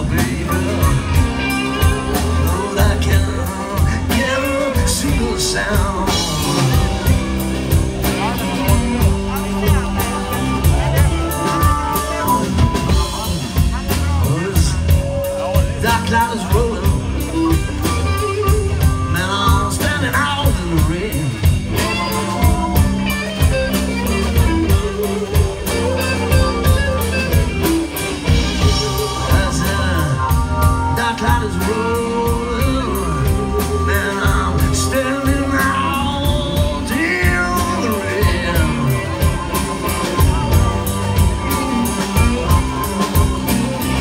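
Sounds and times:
live blues band: 0:00.0 - 0:44.0
man singing: 0:00.0 - 0:44.0.

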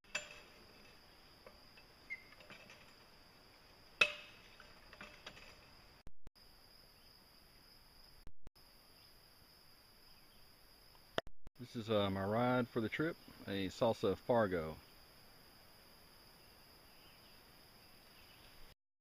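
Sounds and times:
metallic clanks of hand pump: 0:00.1 - 0:02.9
insects droning: 0:00.1 - 0:18.8.

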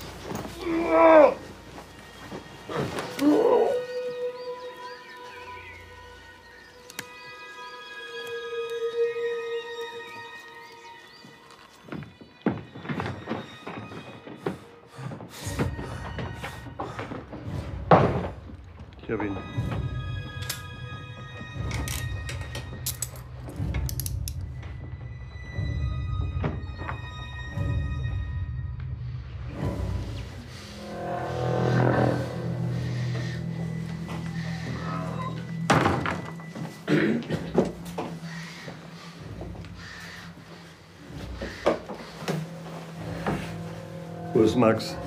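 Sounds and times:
tense film score drone: 0:13.3 - 0:45.0
low rumbling score: 0:28.9 - 0:35.7, 0:38.1 - 0:45.0.

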